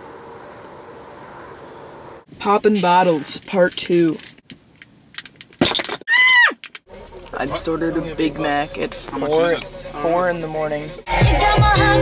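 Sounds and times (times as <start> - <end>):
high-pitched squealing whoop: 6.1 - 6.6.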